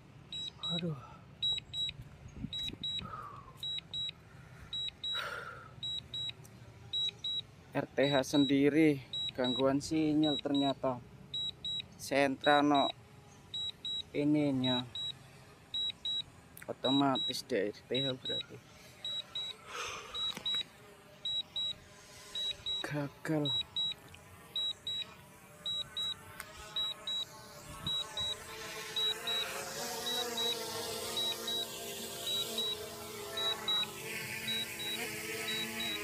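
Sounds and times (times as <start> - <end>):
high-pitched warning beeps: 0.3 - 6.4, 7.0 - 10.8, 11.4 - 15.2, 15.8 - 36.0.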